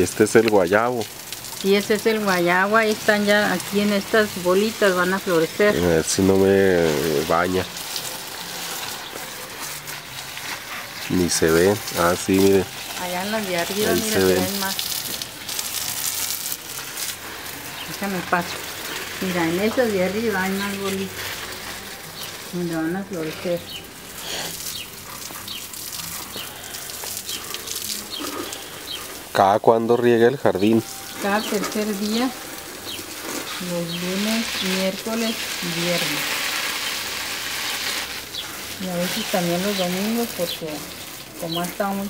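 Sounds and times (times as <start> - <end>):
garden hose spraying water: 0.0 - 42.0
water pattering on leaves: 0.0 - 42.0.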